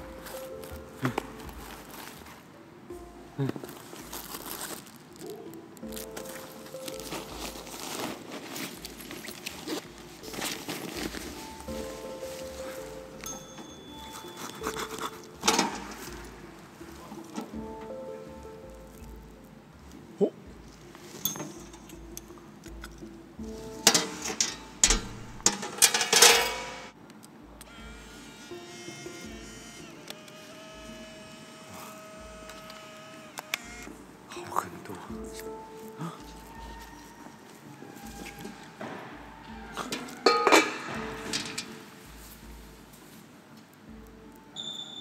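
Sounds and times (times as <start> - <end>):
handling knocks and rustles: 0.0 - 20.0, 20.6 - 27.0
quiet background music: 0.0 - 45.0.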